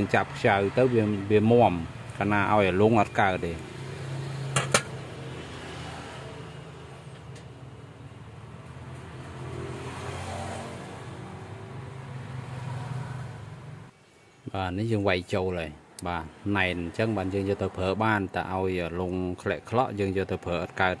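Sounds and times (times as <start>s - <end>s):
metallic clicks on steel tray: 4.6s - 5.0s.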